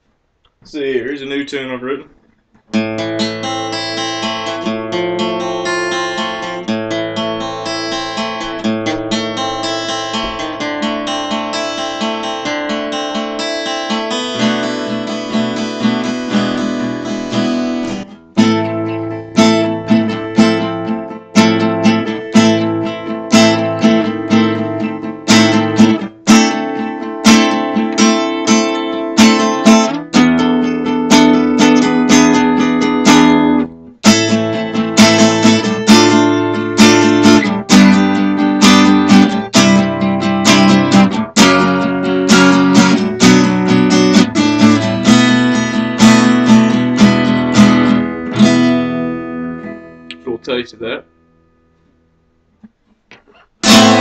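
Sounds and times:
acoustic guitar playing: 0.7 - 54.0.

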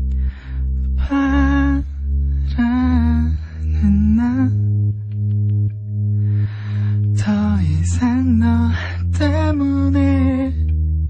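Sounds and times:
low musical accompaniment: 0.0 - 11.0
man singing with vibrato: 1.0 - 1.9, 7.2 - 10.6.

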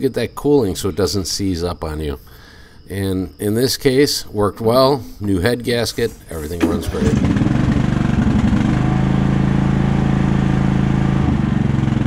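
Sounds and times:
riding mower engine running: 6.1 - 12.0.

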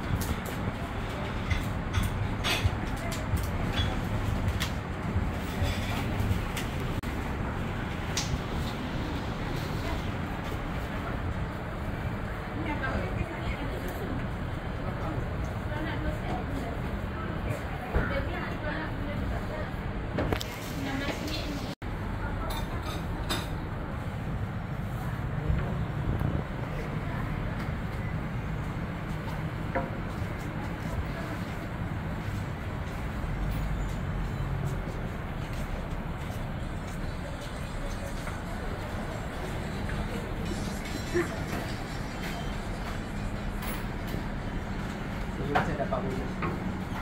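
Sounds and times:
gas burners low roar: 0.0 - 47.0
low traffic rumble: 0.0 - 47.0.

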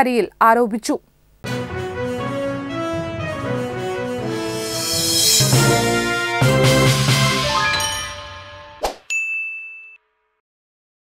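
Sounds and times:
bright electronic ding: 7.6 - 8.4, 9.1 - 10.0.

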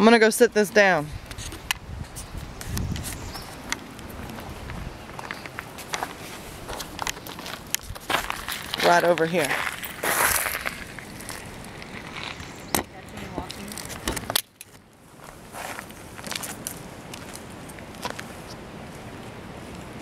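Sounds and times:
rustle: 0.0 - 20.0
footsteps on gritty asphalt: 1.4 - 14.4, 15.1 - 20.0.

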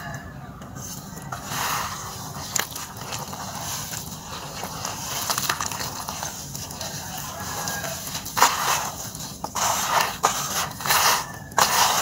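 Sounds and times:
hands squelching wet dirt: 0.8 - 12.0.

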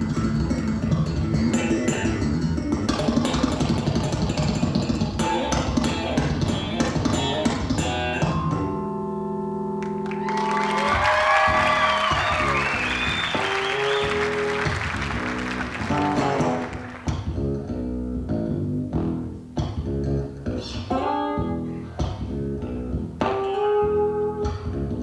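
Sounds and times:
electric bass guitar playing: 0.0 - 25.0.

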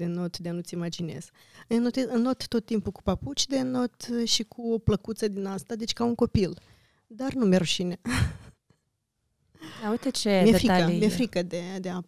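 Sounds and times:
woman sighing: 9.6 - 10.2.

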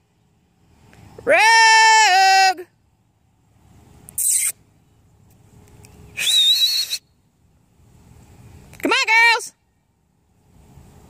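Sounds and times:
person whistling: 6.2 - 7.0.

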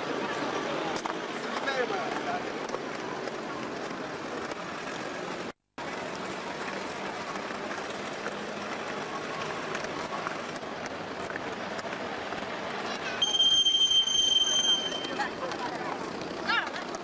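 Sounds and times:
people talking: 0.0 - 4.6, 8.7 - 17.0
traffic: 0.0 - 17.0.

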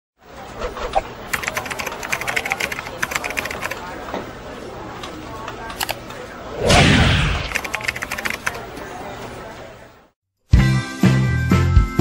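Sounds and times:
keyboard key clicks: 7.5 - 8.6.

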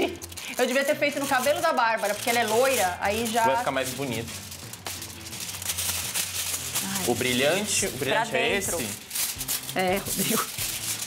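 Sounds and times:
aluminium foil crinkling: 0.0 - 11.0.

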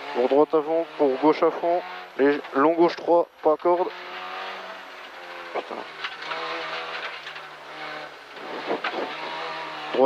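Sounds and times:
rally car engine pulling hard: 0.0 - 10.0
car knocking over road: 3.4 - 9.7.

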